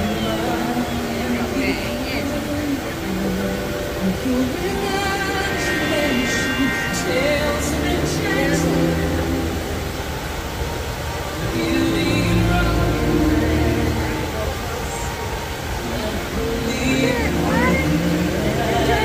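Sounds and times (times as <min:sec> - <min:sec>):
orchestral music over loudspeakers: 0:00.0 - 0:19.0.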